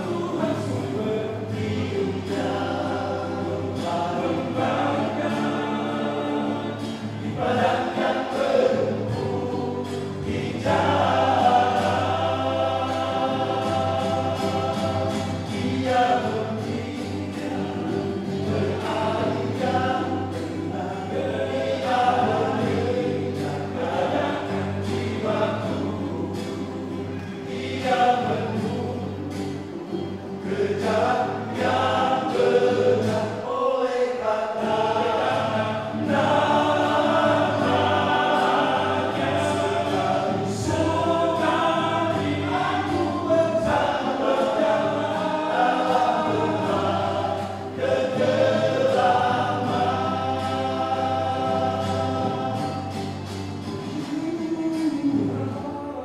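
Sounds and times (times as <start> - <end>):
men's choir singing in harmony: 0.0 - 56.0.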